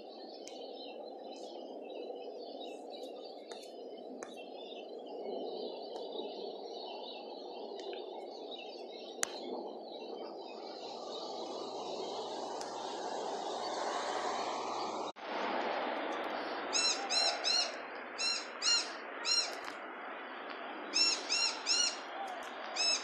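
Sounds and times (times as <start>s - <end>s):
steady outdoor noise: 0.0s - 23.0s.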